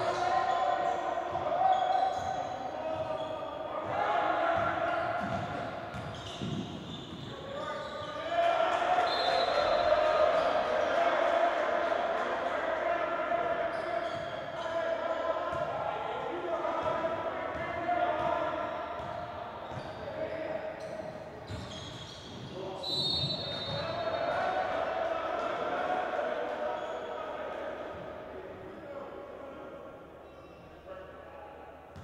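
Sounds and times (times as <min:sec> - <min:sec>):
indistinct shouts and voices: 0:00.0 - 0:05.8.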